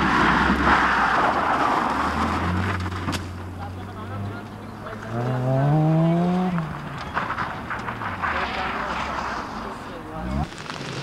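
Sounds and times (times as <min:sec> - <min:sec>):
rally car engine drone: 0:00.0 - 0:10.5
gravel thrown by tyres: 0:06.5 - 0:09.8, 0:10.4 - 0:11.0.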